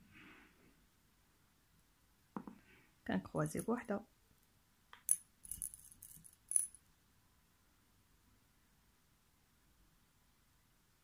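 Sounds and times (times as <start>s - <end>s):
beads clinking against glass: 5.0s - 6.8s.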